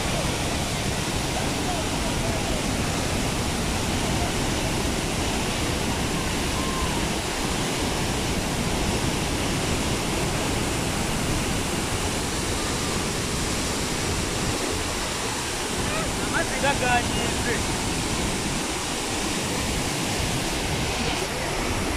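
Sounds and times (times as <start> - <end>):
waterfall rushing: 0.0 - 21.9.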